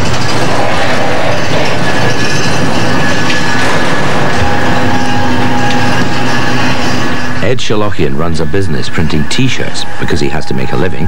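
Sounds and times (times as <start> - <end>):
high squealing tones: 0.0 - 11.0
rumbling clattering machinery: 0.0 - 11.0.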